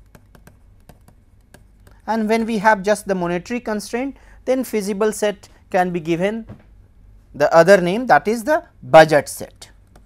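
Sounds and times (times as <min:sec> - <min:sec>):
stylus tapping on pen tablet: 0:00.0 - 0:02.0
low steady hum: 0:00.0 - 0:10.0.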